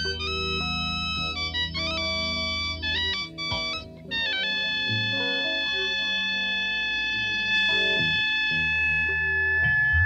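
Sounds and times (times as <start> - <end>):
organ playing sustained chords: 0.0 - 10.0.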